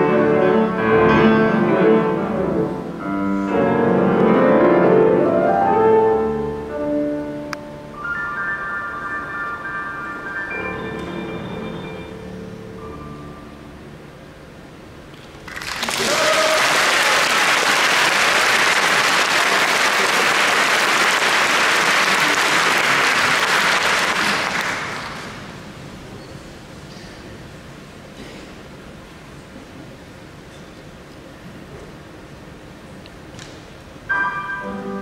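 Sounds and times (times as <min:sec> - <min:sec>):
piano notes ringing out: 0:00.0 - 0:15.1, 0:34.0 - 0:35.0
audience applauding: 0:15.3 - 0:25.6.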